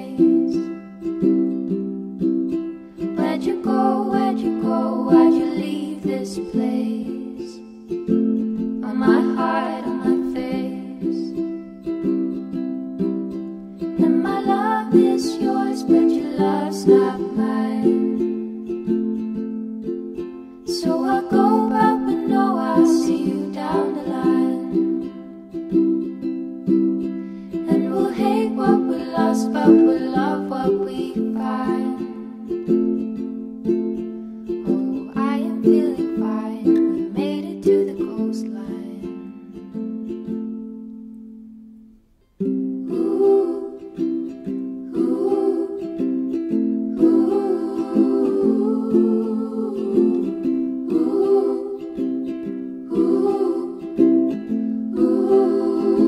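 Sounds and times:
ukulele strumming chords: 0.0s - 56.0s.

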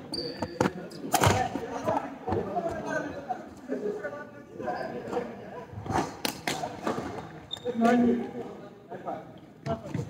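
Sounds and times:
shoe squeak on floor: 0.0s - 1.1s, 7.2s - 8.0s.

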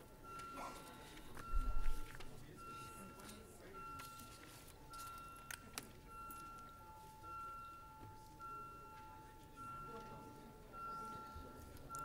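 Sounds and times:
low held electronic tone: 0.0s - 12.0s.

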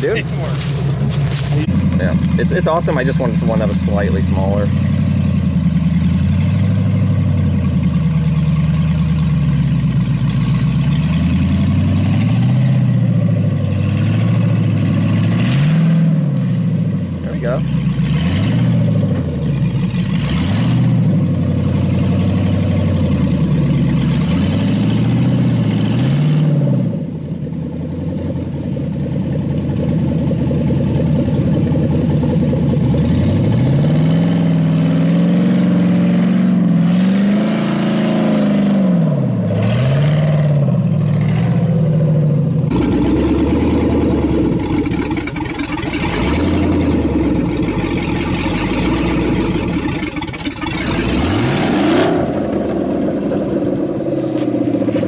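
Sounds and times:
engine revving under load: 0.0s - 7.4s, 10.4s - 27.1s, 31.6s - 55.0s.

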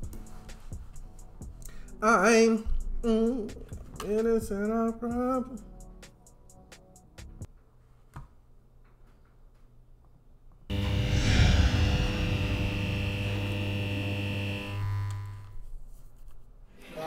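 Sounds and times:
sustained musical chord: 10.7s - 15.5s.

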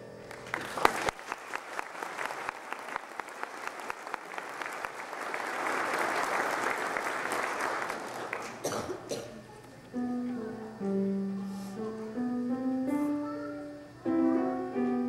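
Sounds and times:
audience applause: 0.2s - 9.1s
piano chord: 10.0s - 15.0s.

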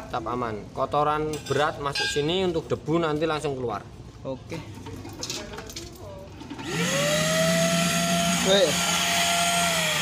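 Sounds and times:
vacuum cleaner motor whining: 6.6s - 10.0s.

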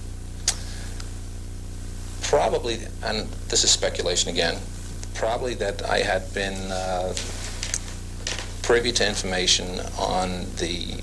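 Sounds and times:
electrical hum and buzz: 0.0s - 11.0s.

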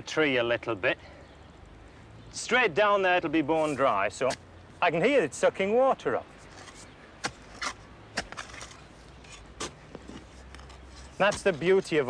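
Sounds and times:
spade chopping and scraping soil: 3.6s - 4.4s, 6.4s - 12.0s.

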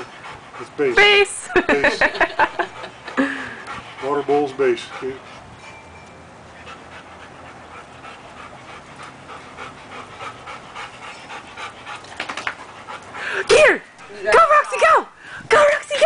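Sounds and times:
dog panting: 0.0s - 5.6s, 6.2s - 14.8s.

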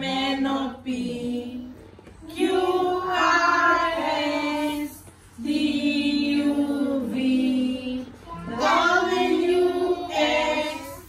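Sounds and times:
children and women singing: 0.0s - 11.0s.

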